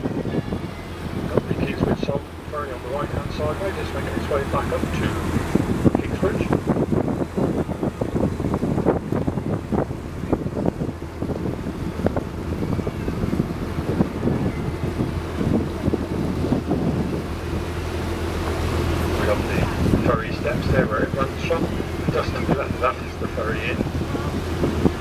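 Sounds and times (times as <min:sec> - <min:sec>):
boat engine humming: 0:00.0 - 0:25.0
wind buffeting microphone: 0:00.0 - 0:25.0.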